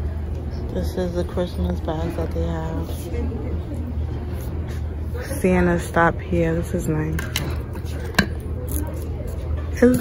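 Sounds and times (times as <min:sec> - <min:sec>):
low store background hum: 0:00.0 - 0:10.0.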